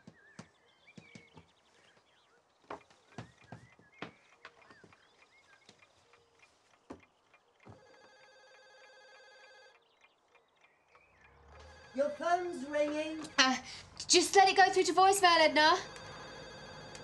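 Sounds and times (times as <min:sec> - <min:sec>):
light clicks and knocks: 0:02.6 - 0:08.1
telephone ringing: 0:07.7 - 0:09.8, 0:11.4 - 0:14.0, 0:14.6 - 0:17.0.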